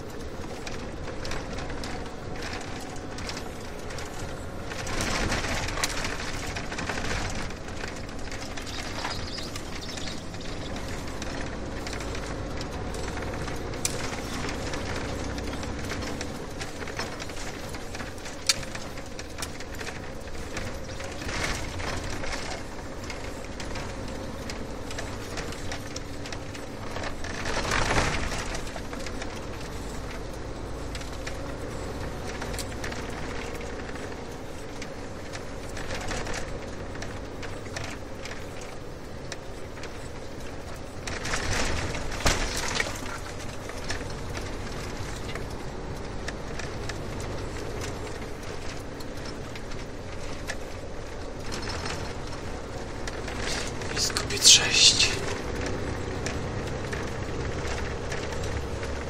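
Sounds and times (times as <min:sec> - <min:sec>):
car road and engine noise: 0:00.0 - 0:59.0.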